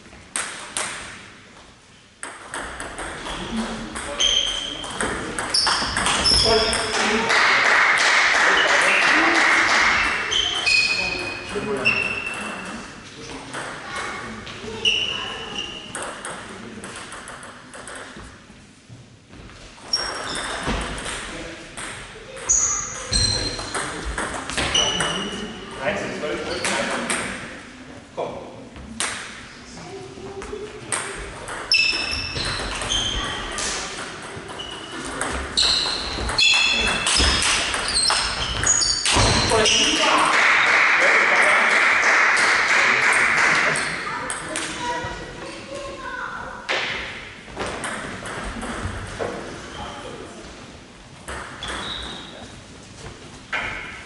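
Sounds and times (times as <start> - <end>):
table tennis ball hits: 0.3 - 1.2, 2.2 - 8.3, 15.9 - 18.2, 20.0 - 22.5, 23.1 - 25.2, 30.9 - 39.9, 46.7 - 49.4.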